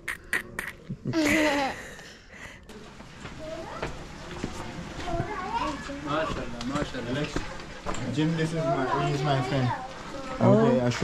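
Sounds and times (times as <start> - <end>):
young children chattering: 3.3 - 6.4, 8.4 - 11.0.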